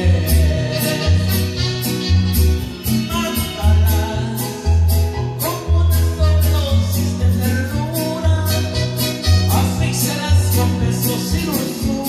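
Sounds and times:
man singing into microphone: 0.0 - 2.1, 2.9 - 12.0
latin backing track with bass: 0.0 - 12.0.

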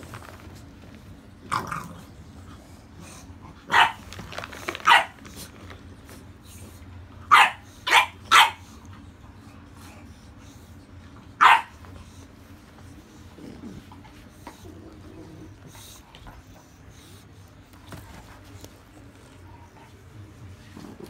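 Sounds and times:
dog barking: 3.7 - 4.0, 4.8 - 5.2, 7.3 - 8.6, 11.4 - 11.8.

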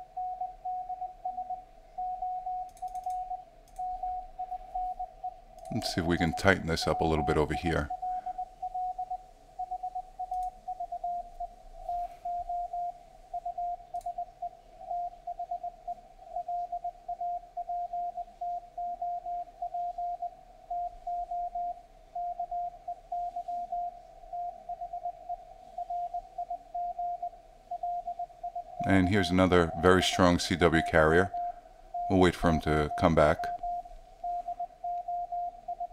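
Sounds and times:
morse code tone: 0.0 - 35.9.

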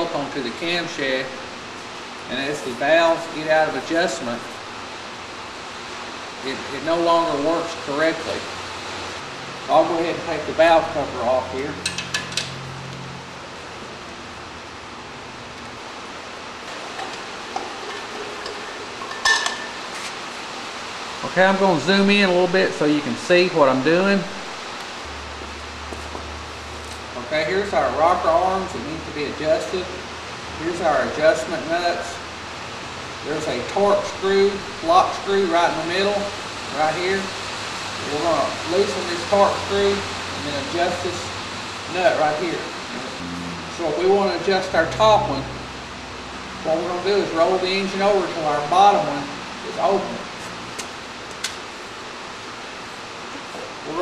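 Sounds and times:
low steady hum: 0.0 - 54.0
steady background hiss: 0.0 - 54.0.

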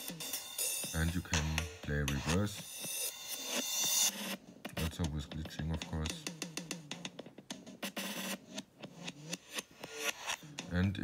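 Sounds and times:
stuttering glitched drum loop: 0.0 - 11.0.

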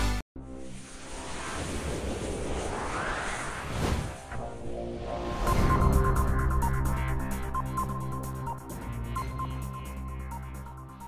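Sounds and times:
rushing rumbling whoosh rising: 0.7 - 10.7.

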